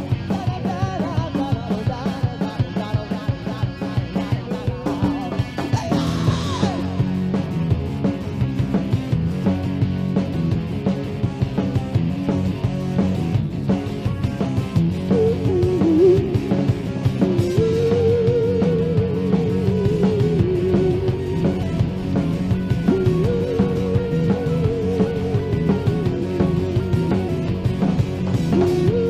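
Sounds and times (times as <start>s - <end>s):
rock band playing: 0.0s - 29.0s
wavering long guitar note: 15.0s - 29.0s.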